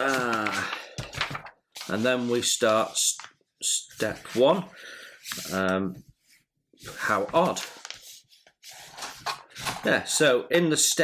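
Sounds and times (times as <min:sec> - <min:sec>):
paper pages rustling and sliding: 0:00.0 - 0:10.0.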